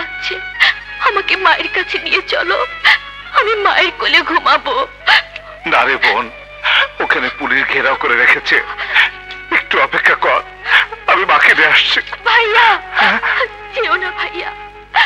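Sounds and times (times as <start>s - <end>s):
background music: 0.0s - 15.0s
person speaking: 5.5s - 14.4s.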